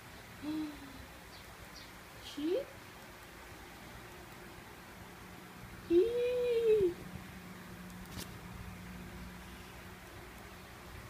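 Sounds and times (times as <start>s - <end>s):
girl's wordless vocal sound: 0.4s - 1.2s.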